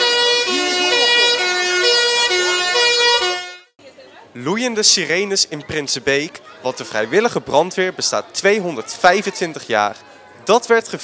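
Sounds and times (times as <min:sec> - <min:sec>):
faint wailing siren tone: 0:00.0 - 0:03.7
fire engine two-tone siren: 0:00.0 - 0:03.7.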